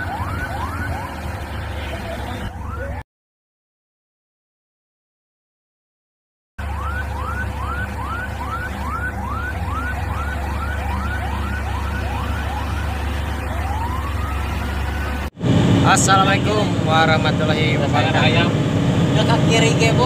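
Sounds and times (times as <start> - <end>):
siren whooping and wailing: 0.0 - 3.0, 6.6 - 15.3
truck diesel engines rumbling: 0.0 - 3.0, 6.6 - 20.0.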